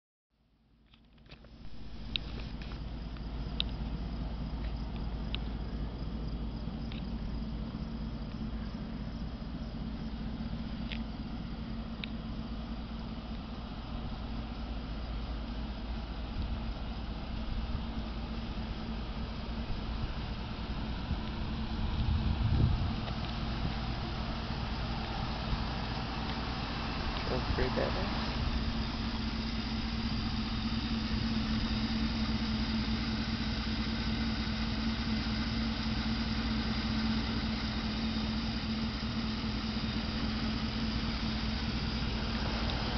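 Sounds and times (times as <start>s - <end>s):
pickup engine idling: 0.6s - 42.9s
faint high ticks: 0.9s - 3.9s, 4.6s - 5.6s, 6.9s - 7.2s, 10.7s - 11.1s, 12.0s - 12.2s, 25.9s - 26.4s.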